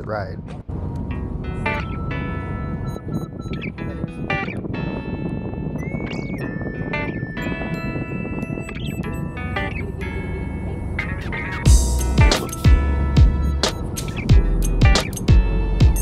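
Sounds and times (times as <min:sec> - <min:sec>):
song with plucked guitar: 0:00.9 - 0:16.0.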